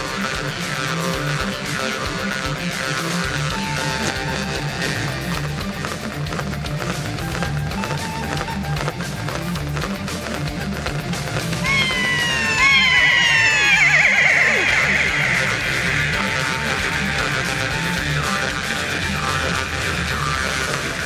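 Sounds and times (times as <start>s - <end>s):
low pulsing backing music: 0.0s - 21.0s
falling sliding high calls: 11.6s - 18.0s.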